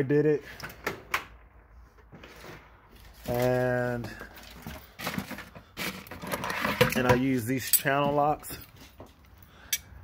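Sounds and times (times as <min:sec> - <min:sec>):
tools rummaged in plastic bucket: 0:02.1 - 0:09.2.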